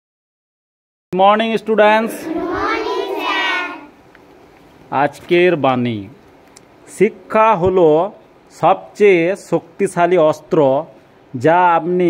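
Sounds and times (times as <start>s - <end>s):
children answering in chorus: 2.0s - 4.0s.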